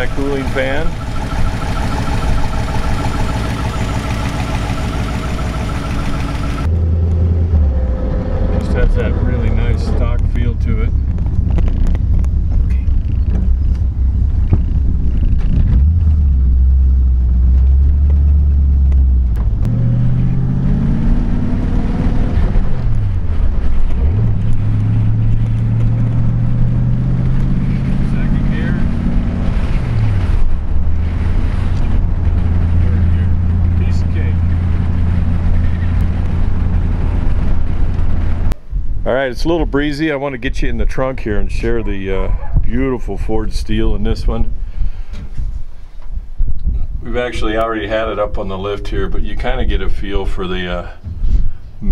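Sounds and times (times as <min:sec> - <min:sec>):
car engine accelerating: 0:00.0 - 0:38.6.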